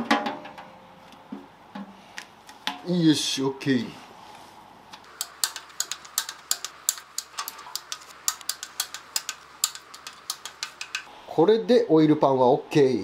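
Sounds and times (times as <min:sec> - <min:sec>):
ratchet wrench clicking: 0:05.1 - 0:11.1.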